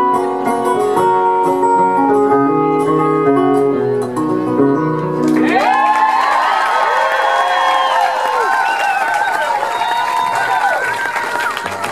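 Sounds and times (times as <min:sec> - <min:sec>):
audience cheering and whooping: 0:05.3 - 0:11.9.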